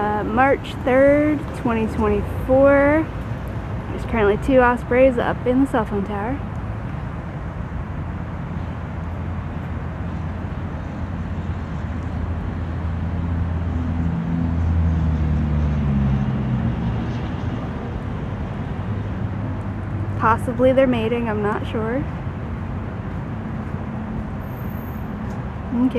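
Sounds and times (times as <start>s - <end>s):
passing motor engine drone: 9.3s - 22.2s.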